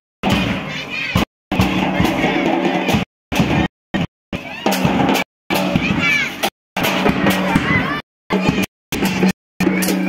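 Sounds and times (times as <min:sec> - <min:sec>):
drum beating: 0:00.2 - 0:10.0
people shouting: 0:00.3 - 0:03.7, 0:04.4 - 0:10.0.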